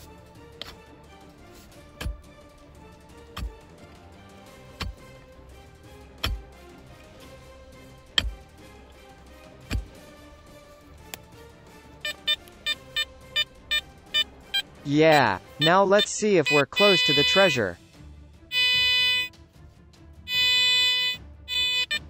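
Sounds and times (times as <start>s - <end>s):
pick striking stony soil: 1.4s - 2.4s, 3.2s - 3.7s, 4.6s - 5.2s, 6.1s - 6.6s, 8.1s - 9.0s, 9.6s - 10.2s
metal detector short beeps: 15.6s - 17.6s, 18.5s - 19.3s, 20.3s - 22.0s.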